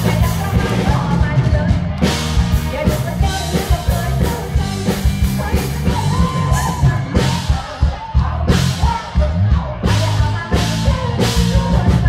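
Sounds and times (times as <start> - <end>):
live band music: 0.0 - 12.0
woman singing: 0.0 - 12.0.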